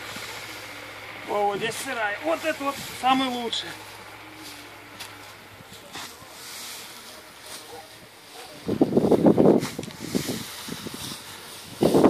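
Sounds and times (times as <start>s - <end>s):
straw rustling: 0.0s - 12.0s
wind buffeting microphone: 8.6s - 12.0s.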